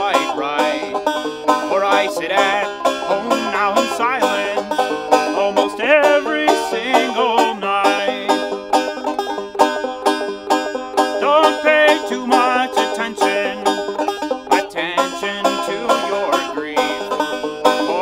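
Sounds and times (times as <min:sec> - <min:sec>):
man singing: 0:00.0 - 0:01.0, 0:01.7 - 0:08.4, 0:11.2 - 0:13.8, 0:14.5 - 0:18.0
banjo picking: 0:00.0 - 0:18.0.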